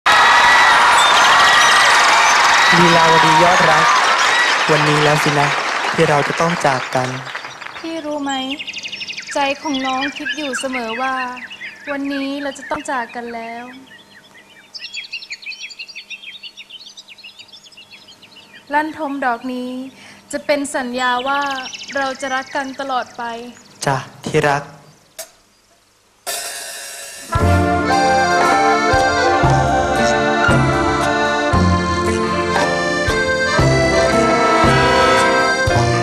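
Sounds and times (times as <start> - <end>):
crowd cheering and clapping: 0.0 - 8.2, 27.4 - 31.6
shouts: 0.1 - 4.8
small birds chirping: 6.2 - 26.0.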